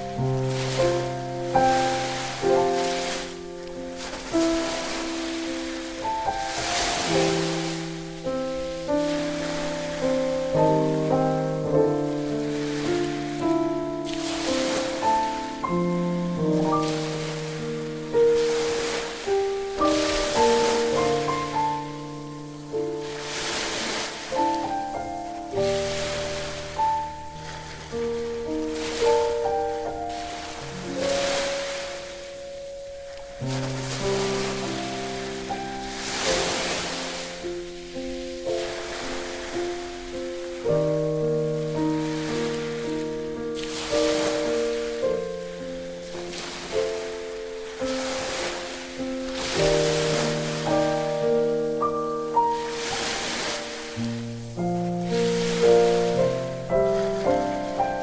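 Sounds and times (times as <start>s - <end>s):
sea waves: 0.0s - 58.0s
slow gentle piano melody: 0.0s - 58.0s.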